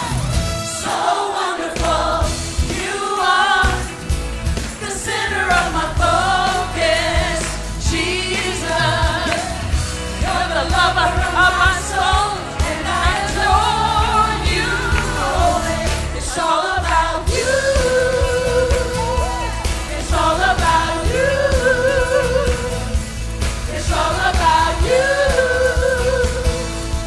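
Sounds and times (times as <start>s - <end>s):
instrumental accompaniment with beat: 0.0s - 27.0s
praise team singing: 0.0s - 27.0s.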